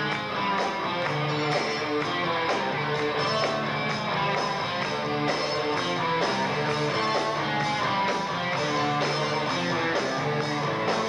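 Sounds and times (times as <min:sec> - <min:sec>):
drums: 0:00.0 - 0:11.0
electric guitar: 0:00.0 - 0:11.0.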